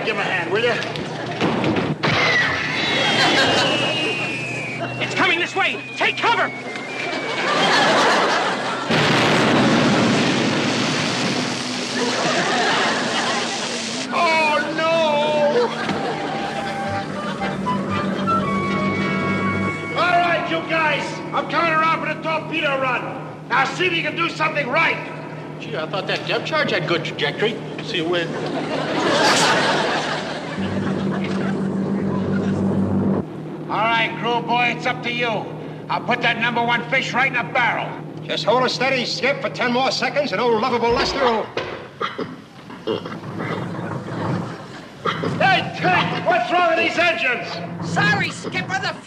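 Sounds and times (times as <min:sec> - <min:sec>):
boat engines droning: 0:02.9 - 0:09.0, 0:11.1 - 0:49.0
underwater explosion blast: 0:08.9 - 0:13.8.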